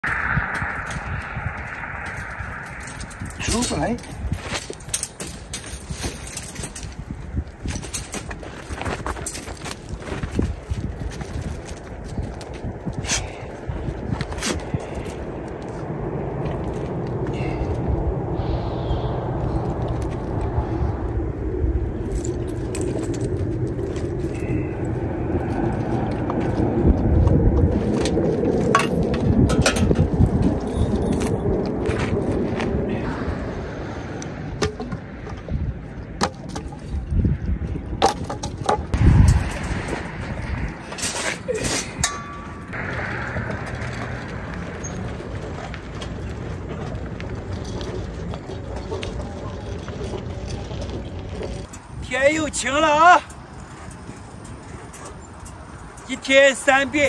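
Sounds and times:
outdoor rumble: 0.0 - 57.0
clinks and knocks: 2.2 - 12.6, 27.9 - 32.4, 34.6 - 37.1, 38.0 - 40.1, 40.9 - 42.8.

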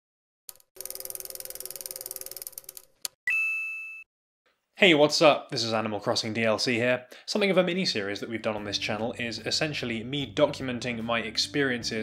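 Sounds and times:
rapid even ticking: 0.5 - 2.9
bell-like ding: 3.3 - 4.1.

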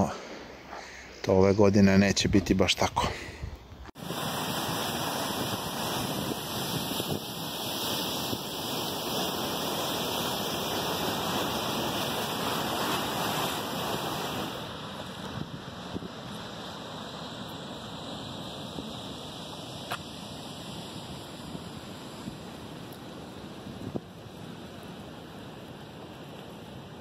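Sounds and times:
water rushing from dam outlet: 4.0 - 27.0.

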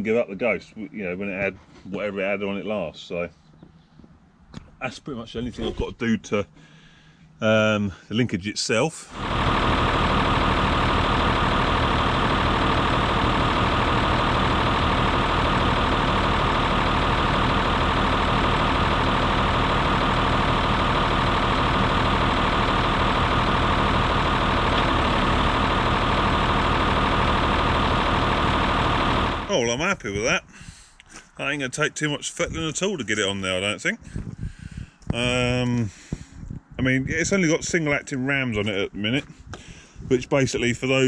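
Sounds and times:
diesel engine idling: 9.1 - 29.6.

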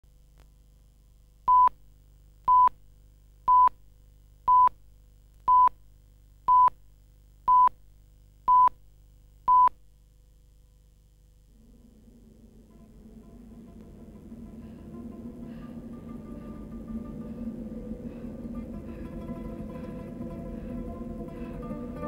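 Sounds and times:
faint low hum: 0.0 - 22.0.

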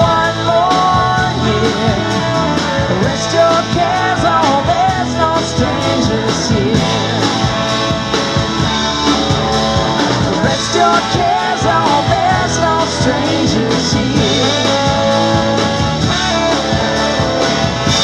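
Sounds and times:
lead vocal singing: 0.0 - 18.0
live rock band playing: 0.0 - 18.0.

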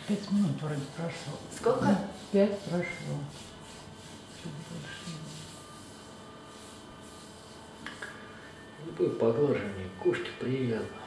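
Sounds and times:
hands rubbing skin: 0.0 - 8.3.

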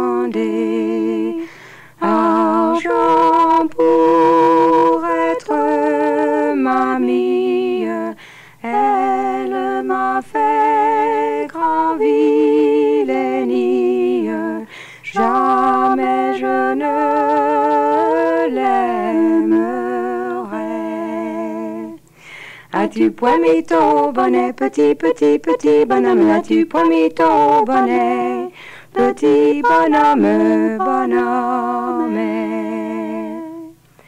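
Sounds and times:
two women singing unaccompanied: 0.0 - 33.8
singers breathing: 1.4 - 2.0, 8.2 - 8.6, 14.7 - 15.0, 22.1 - 22.7, 28.5 - 28.9.

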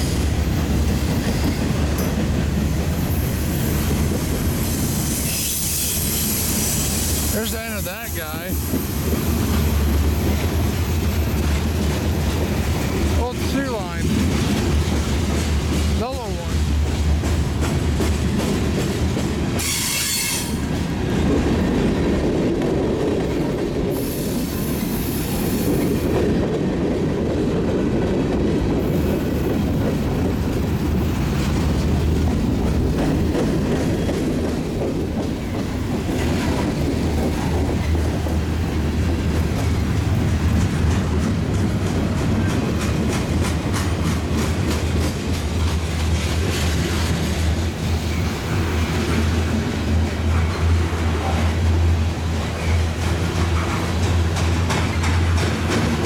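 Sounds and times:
train wheels rumbling on rail: 0.0 - 56.0
train wheel squeal: 3.0 - 7.5, 19.6 - 20.7, 23.9 - 26.1
wheels clicking over rail joints: 25.8 - 56.0.

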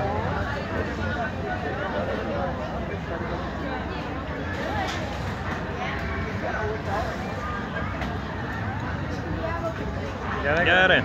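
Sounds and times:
crowd noise: 0.0 - 11.0
people talking in background: 0.0 - 11.0.

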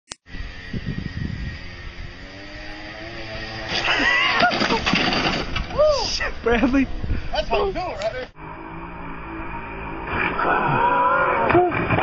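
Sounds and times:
atv engine running: 0.3 - 4.4, 8.4 - 10.9.

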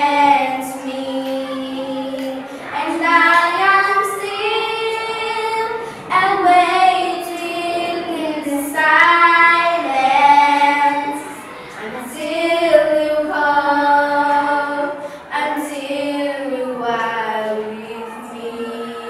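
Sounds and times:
children singing: 0.0 - 19.0.

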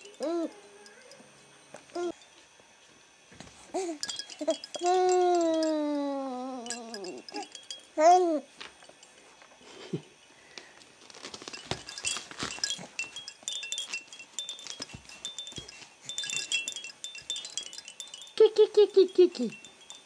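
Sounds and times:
hanging toys clinking and rattling: 0.0 - 2.4, 3.4 - 9.6, 11.1 - 20.0
high tinkling chime notes: 0.0 - 2.4, 3.8 - 9.3, 11.4 - 20.0.

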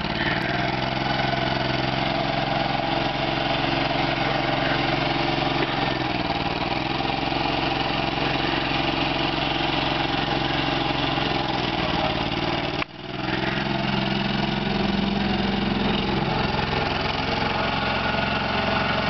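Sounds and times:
tractor engine running: 0.0 - 19.0.

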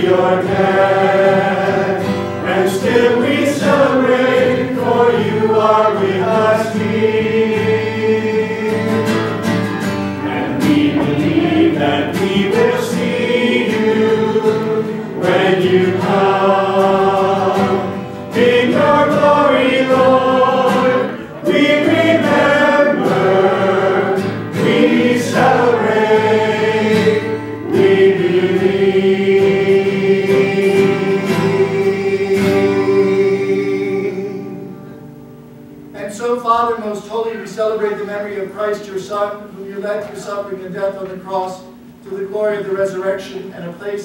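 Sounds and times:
choir and congregation singing: 0.0 - 35.0.

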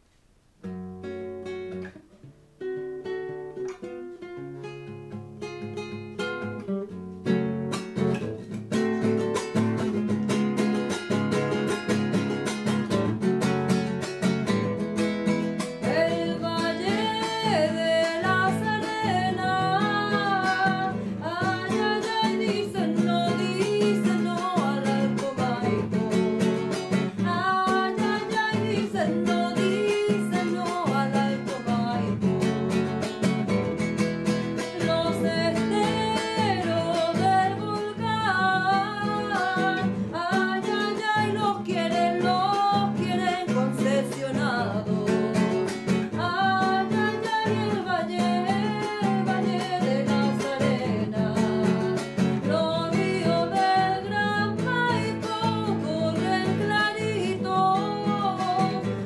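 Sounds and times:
classical guitar playing: 0.6 - 59.0
woman singing: 14.6 - 59.0.

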